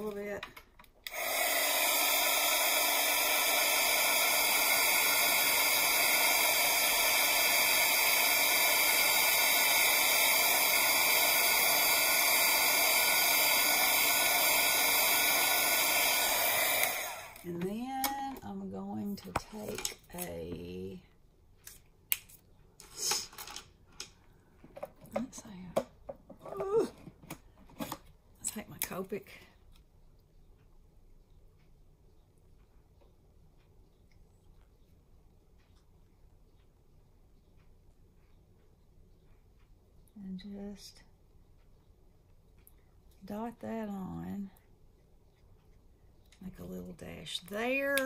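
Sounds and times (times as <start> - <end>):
heat tool blowing: 1.0 - 17.6.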